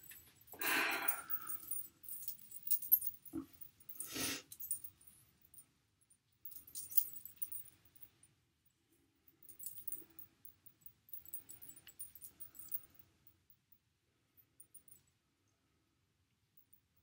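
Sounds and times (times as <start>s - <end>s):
charm bracelet clinking: 0.0s - 5.6s, 6.4s - 8.1s, 9.4s - 13.1s.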